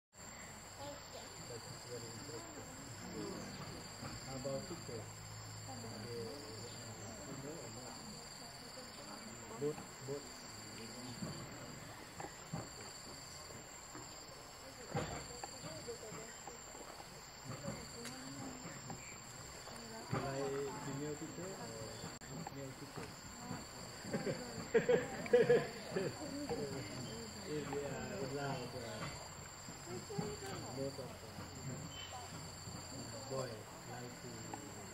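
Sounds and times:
high-pitched insect chorus: 0.2s - 34.9s
faint human voices: 0.3s - 34.9s.

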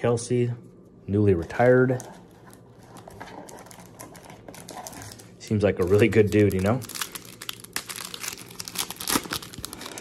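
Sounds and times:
foil card packs rustling: 1.8s - 10.0s.

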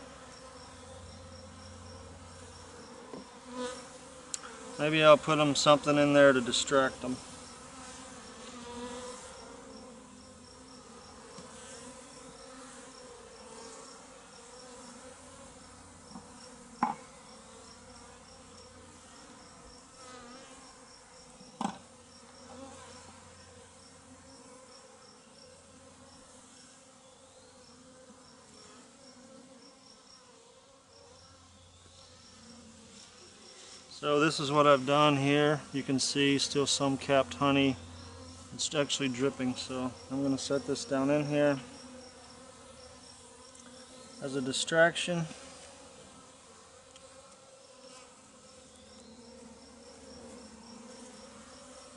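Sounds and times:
bees humming: 0.0s - 51.9s.

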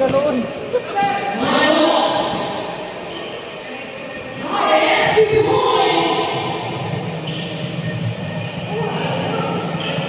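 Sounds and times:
voices shouting in a gym hall: 0.0s - 10.0s.

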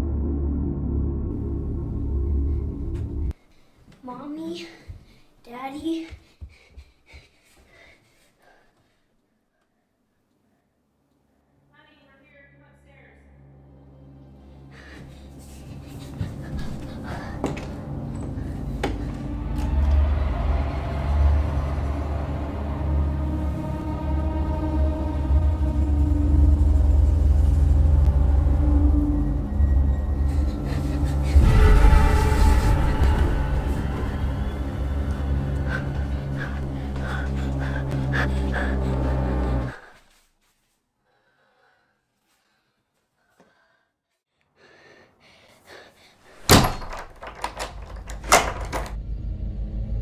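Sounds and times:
low rumbling horror drone: 0.0s - 3.4s, 13.2s - 39.8s, 48.6s - 50.0s
bang on a wooden door: 46.5s - 48.9s.

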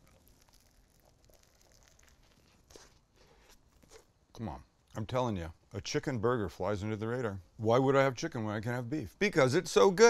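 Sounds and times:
chewing crispy food: 0.0s - 4.1s.

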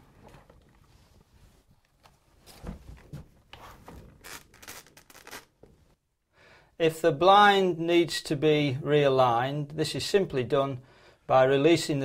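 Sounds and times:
roller blind clicks: 4.2s - 5.5s.

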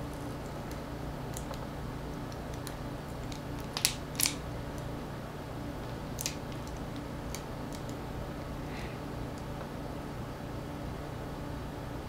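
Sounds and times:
steady low hum: 0.0s - 12.0s
small plastic clicks and snaps: 0.4s - 4.9s, 6.2s - 8.0s.

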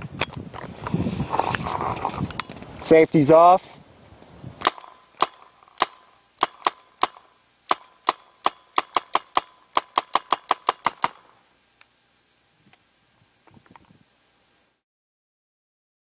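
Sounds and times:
paintball gun shots: 4.6s - 11.3s.

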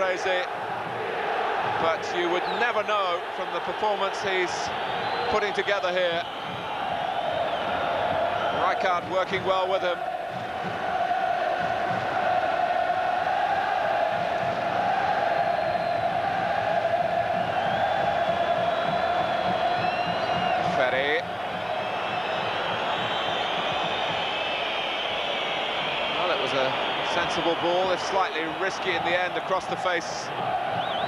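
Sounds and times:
stadium crowd chanting: 0.0s - 4.1s, 6.2s - 31.0s
high whistles: 17.4s - 28.9s, 30.8s - 31.0s.

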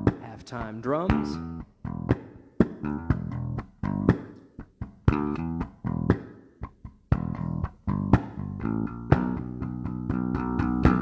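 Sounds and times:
electric bass plucked: 0.0s - 11.0s.

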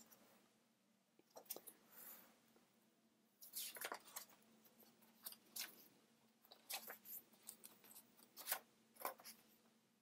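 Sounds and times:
paper pages being turned: 3.4s - 5.9s, 6.5s - 9.4s.

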